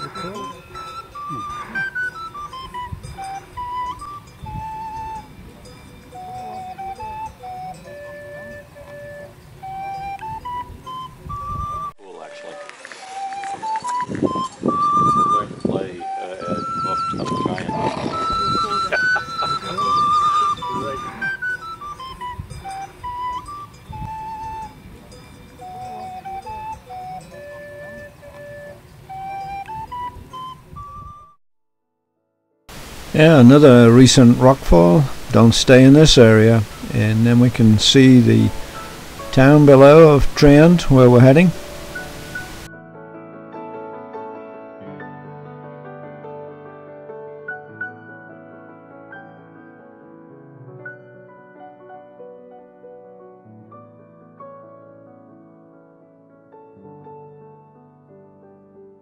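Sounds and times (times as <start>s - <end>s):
recorder playing slow melody: 0.0s - 31.4s, 37.9s - 42.7s.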